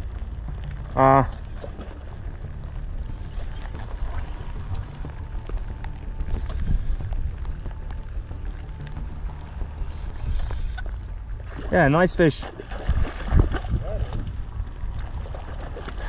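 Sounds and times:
faint ticks and rustles: 0:00.0 - 0:12.4
wind buffeting microphone: 0:00.0 - 0:16.0.

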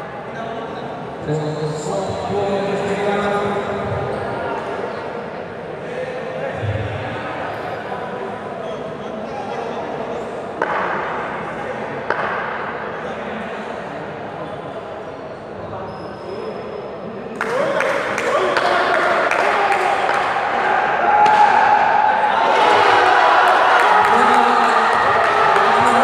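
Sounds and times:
voices echoing in sports hall: 0:00.0 - 0:26.0.

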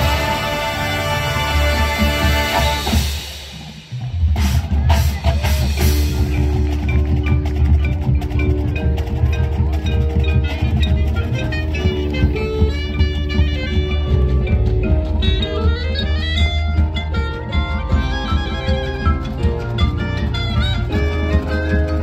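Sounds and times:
full band chord: 0:00.0 - 0:03.4
drums: 0:00.0 - 0:22.0
low bass: 0:04.2 - 0:22.0
marimbas playing rhythmic pattern: 0:04.4 - 0:22.0.

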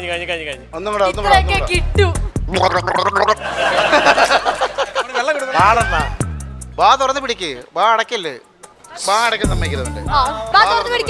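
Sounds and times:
background music: 0:00.0 - 0:11.0
person gargling a tune: 0:02.5 - 0:03.4.

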